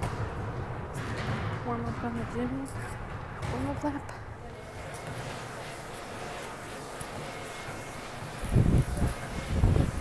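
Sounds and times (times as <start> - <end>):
treadmill humming: 3.2 - 10.0.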